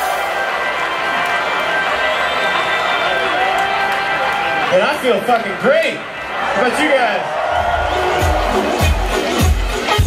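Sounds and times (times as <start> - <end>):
electronic funk band playing: 7.6 - 10.0.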